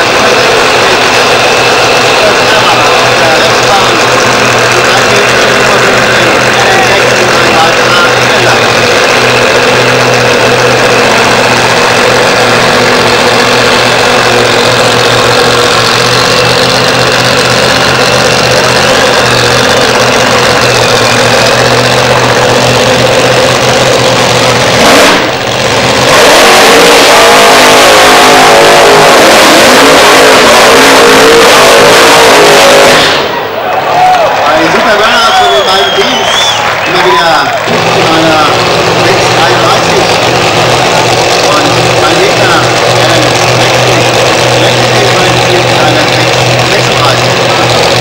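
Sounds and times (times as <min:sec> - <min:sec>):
racing car engines revving: 0:00.0 - 0:48.0.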